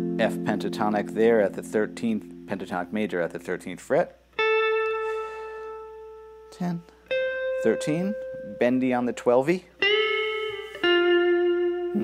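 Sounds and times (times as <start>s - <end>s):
electric guitar note ringing: 0.0s - 3.6s, 4.4s - 12.0s.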